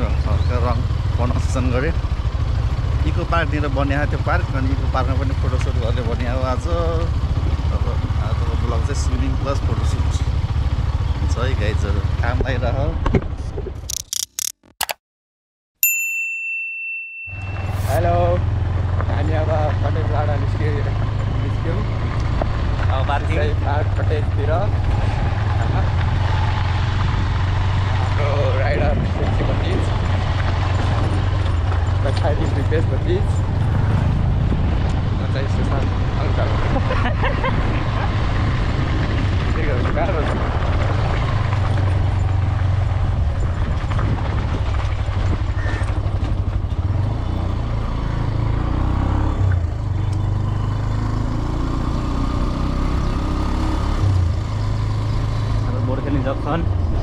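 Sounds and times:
motorcycle engine running: 0.0 - 13.4, 17.4 - 57.0
wind rushing over microphone: 21.2 - 47.0, 56.6 - 57.0.

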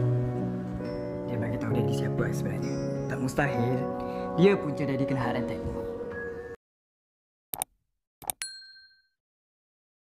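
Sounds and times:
notification bell ding: 8.3 - 9.2.

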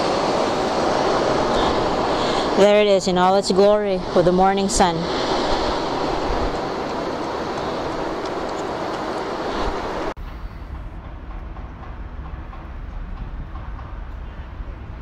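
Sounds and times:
steady rushing outdoor noise: 0.0 - 15.0.

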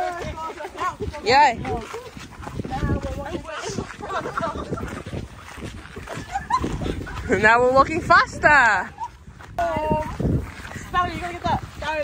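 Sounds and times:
wind rumble on microphone: 0.0 - 12.0
women talking and laughing: 0.0 - 12.0.

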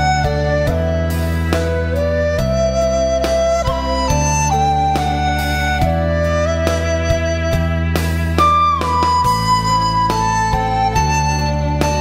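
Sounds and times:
bamboo flute melody: 0.0 - 12.0
plucked-string accompaniment and bass: 0.0 - 12.0.

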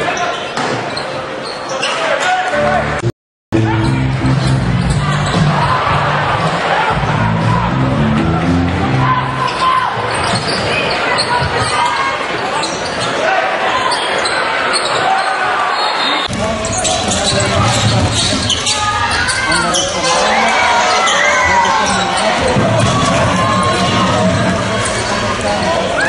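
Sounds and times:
crowd noise: 0.0 - 26.0
sneakers squeaking on court: 0.2 - 2.1, 9.5 - 13.2, 13.8 - 23.9.

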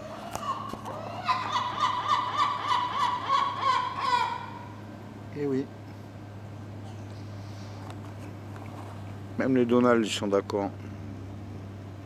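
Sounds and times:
gull calling: 0.0 - 4.9.

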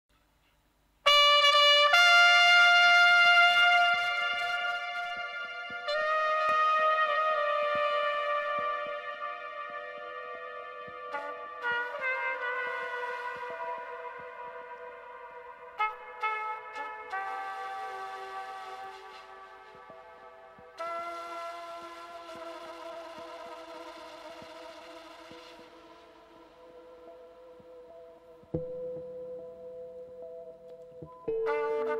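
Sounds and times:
solo trumpet long notes: 1.0 - 29.0, 31.3 - 31.9.

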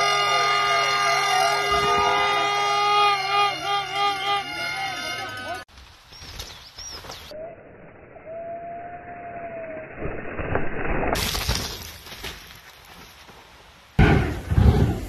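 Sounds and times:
horns blaring: 0.0 - 5.7
mountain bike trail noise: 0.0 - 15.0
person laughing: 3.0 - 4.7.

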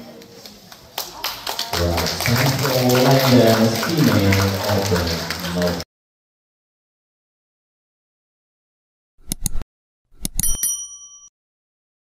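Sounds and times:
bright bell ding: 10.4 - 11.3.

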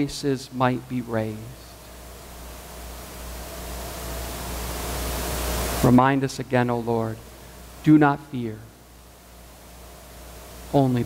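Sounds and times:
low hum: 0.0 - 11.0
steady hiss: 0.0 - 11.0.

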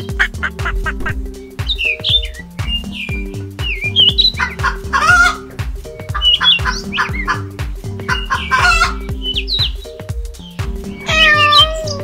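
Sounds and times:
hen clucking: 0.0 - 10.0, 11.0 - 12.0
background music with steady beat: 0.0 - 12.0
short chirping bird calls: 1.4 - 4.6, 8.1 - 12.0.

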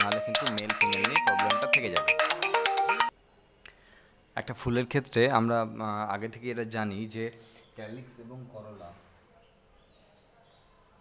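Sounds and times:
phone ringtone melody: 0.0 - 3.1.

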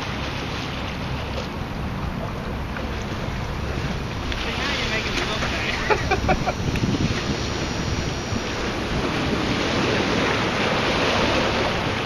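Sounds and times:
water lapping against rocks: 0.0 - 12.0
wave washing over rocks: 0.0 - 12.0
wind buffeting microphone: 0.8 - 12.0.

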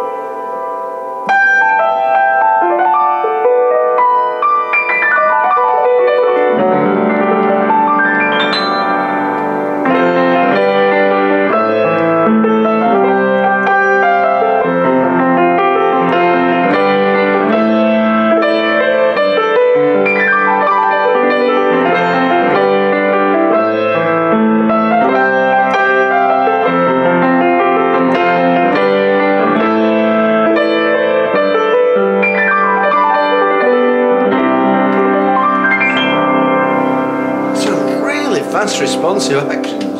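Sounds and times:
piano chords and runs: 0.0 - 39.9.

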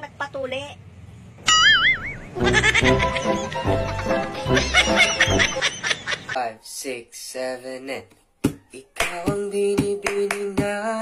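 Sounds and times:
background music with steady beat: 8.4 - 11.0.

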